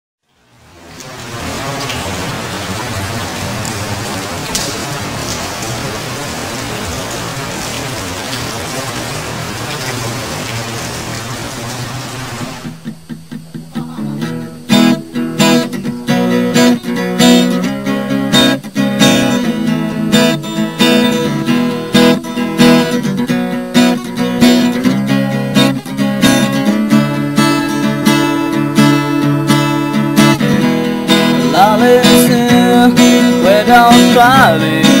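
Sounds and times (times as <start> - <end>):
steady hiss: 0.3 - 35.0
low held notes: 1.1 - 35.0
acoustic guitar picking and strumming: 10.6 - 35.0.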